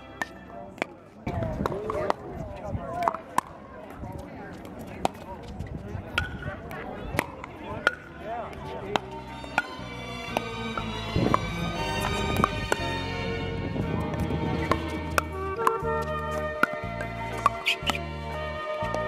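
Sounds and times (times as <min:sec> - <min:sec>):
players' voices: 0:00.0 - 0:19.0
background music with chords: 0:09.2 - 0:19.0
paddles hitting plastic ball: 0:10.3 - 0:12.9, 0:14.1 - 0:15.8, 0:16.4 - 0:18.0.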